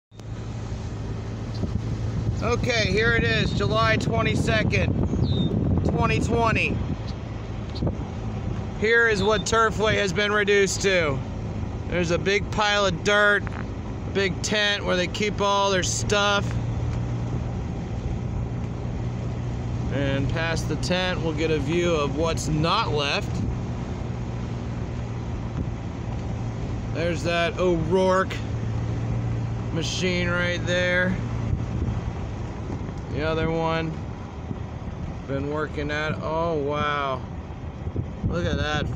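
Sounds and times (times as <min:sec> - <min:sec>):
road and wind noise: 0:00.0 - 0:38.9
car engine hum: 0:00.1 - 0:38.9.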